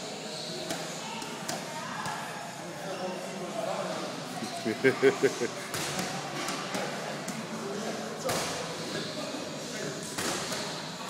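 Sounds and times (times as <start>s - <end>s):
voices in a gym hall: 0.0s - 11.0s.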